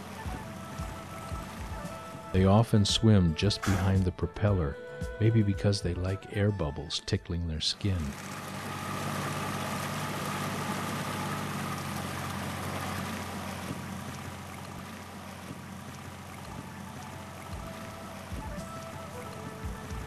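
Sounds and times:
water rushing: 0.0 - 2.4, 7.7 - 20.0
outboard motor running: 0.0 - 2.8, 7.7 - 20.0
background music: 0.0 - 20.0.

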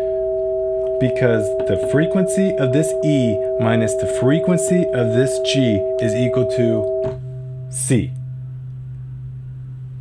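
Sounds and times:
synthesizer sine-like tones: 0.0 - 10.0.

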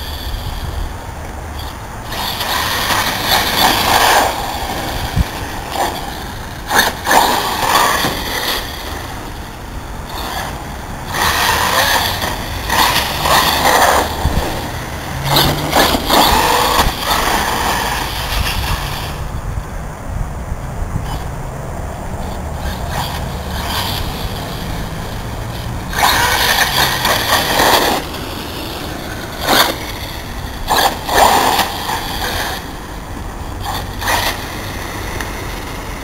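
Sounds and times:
rc car motor and tyres surging: 0.0 - 36.0.

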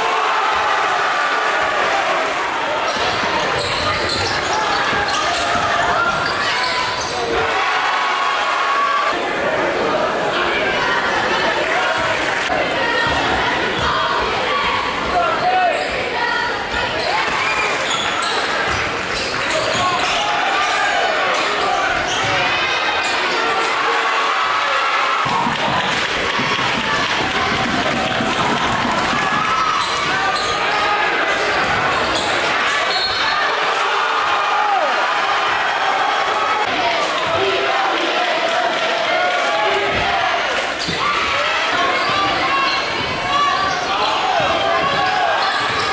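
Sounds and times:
crowd talking and calling out: 0.0 - 45.9.

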